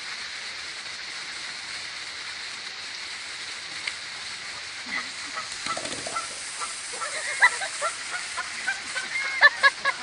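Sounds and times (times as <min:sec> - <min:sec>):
goose honking: 0:04.9 - 0:07.2.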